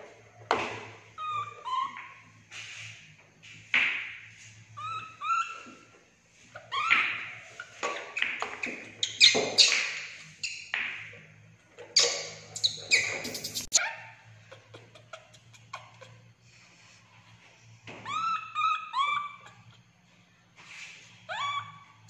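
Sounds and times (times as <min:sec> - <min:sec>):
baby monkey squeaky chirping calls: 0:01.1 - 0:02.3, 0:04.8 - 0:05.9, 0:06.5 - 0:10.7, 0:11.9 - 0:16.3, 0:18.0 - 0:19.9, 0:21.2 - 0:22.0.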